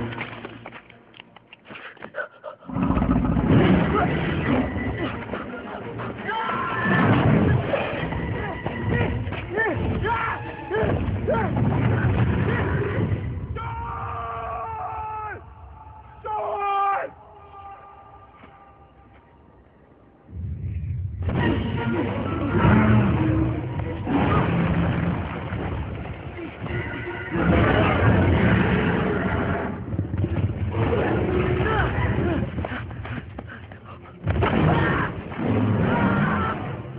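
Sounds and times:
dinosaur roaring: 0:02.7 - 0:04.0.

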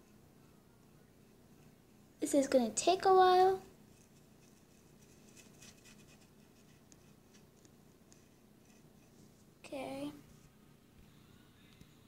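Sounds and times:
paintbrush scratching on wood: 0:03.9 - 0:07.5.

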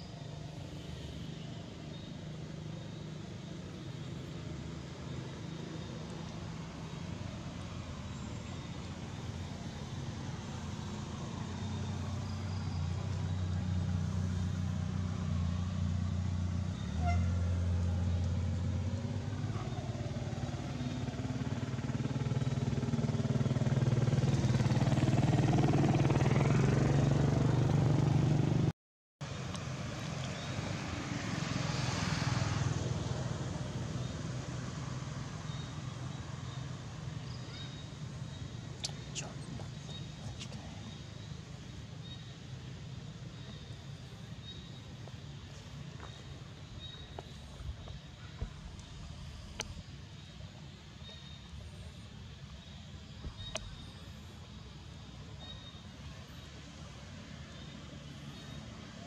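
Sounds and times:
passing motor traffic hum: 0:00.0 - 0:59.0.

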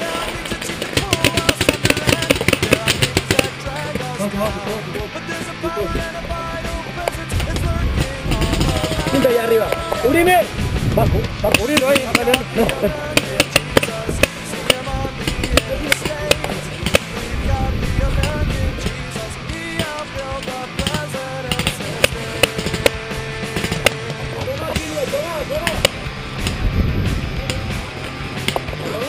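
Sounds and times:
paintball marker rapid firing: 0:00.0 - 0:04.2, 0:07.0 - 0:09.5, 0:11.4 - 0:17.3, 0:18.2 - 0:26.6, 0:28.4 - 0:28.9
guitar background music: 0:00.0 - 0:29.0.

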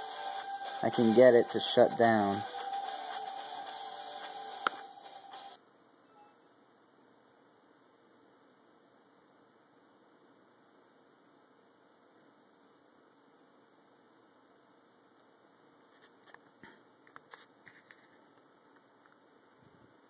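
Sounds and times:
faint hiss: 0:00.0 - 0:20.0
steady multi-pitch hum: 0:00.0 - 0:20.0.

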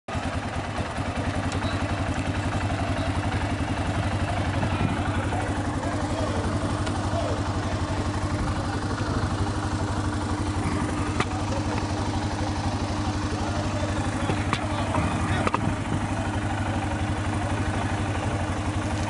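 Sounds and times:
atv engine idling: 0:00.1 - 0:19.0
faint voices: 0:00.2 - 0:19.0.

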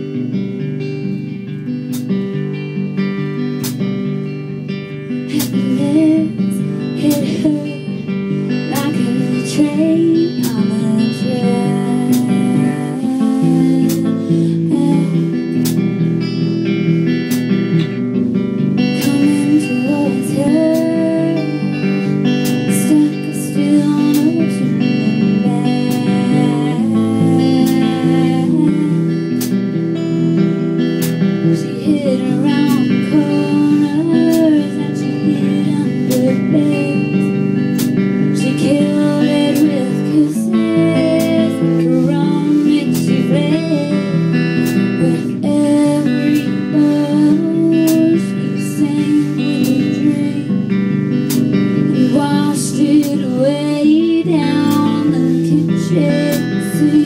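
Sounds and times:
strummed guitar: 0:00.0 - 0:57.0
person singing: 0:04.8 - 0:16.5, 0:18.6 - 0:57.0.

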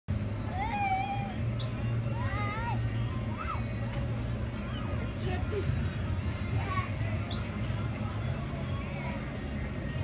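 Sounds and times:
high-pitched squeal: 0:00.2 - 0:10.0.

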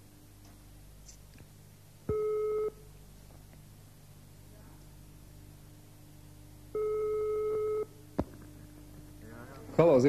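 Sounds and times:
faint line hum: 0:00.0 - 0:10.0
telephone ringback tone: 0:06.8 - 0:07.9.

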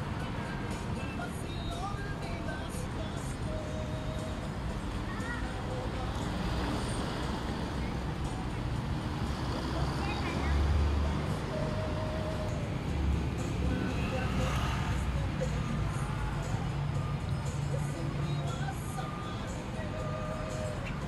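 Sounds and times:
traffic noise: 0:00.0 - 0:21.0.

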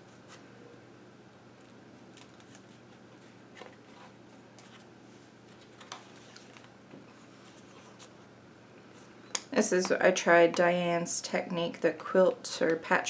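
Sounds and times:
pages turning rustling: 0:01.6 - 0:08.2.

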